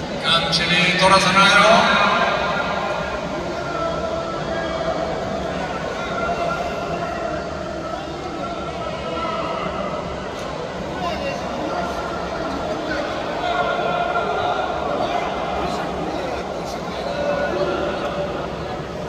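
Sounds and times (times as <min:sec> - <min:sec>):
man's voice over public-address system: 0:00.0 - 0:03.4, 0:14.9 - 0:18.3.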